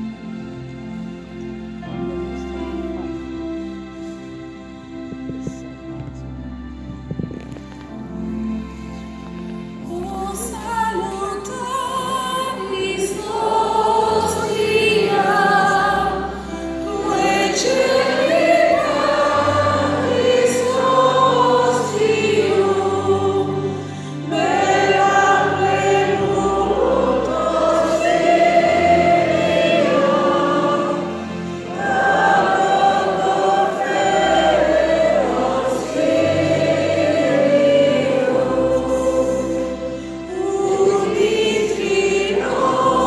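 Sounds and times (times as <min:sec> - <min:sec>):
group singing a hymn: 0:12.5 - 0:43.0.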